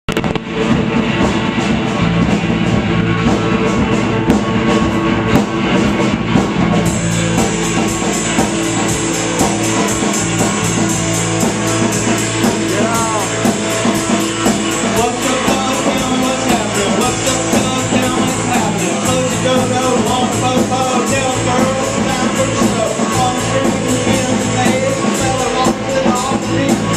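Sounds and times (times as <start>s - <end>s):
live rock band playing: 0.0s - 26.9s
cymbals fast even beat: 0.1s - 26.9s.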